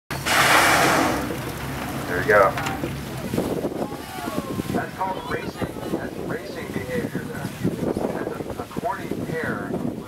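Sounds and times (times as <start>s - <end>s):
whale blow exhalation: 0.1s - 1.5s
boat engine hum: 0.1s - 10.0s.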